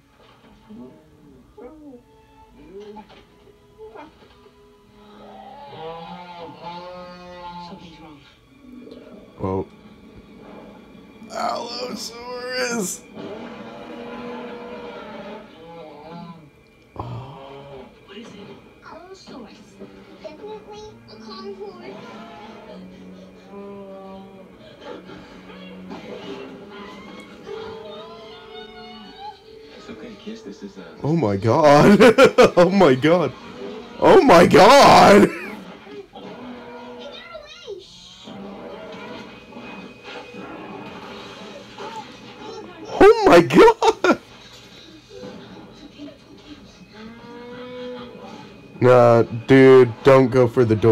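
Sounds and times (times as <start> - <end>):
film music through tv speaker: 0.0 - 50.9
faint voices: 11.3 - 13.0.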